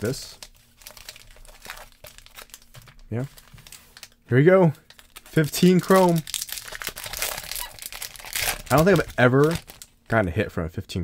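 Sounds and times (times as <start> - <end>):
foil wrappers crinkling: 0.0 - 10.0.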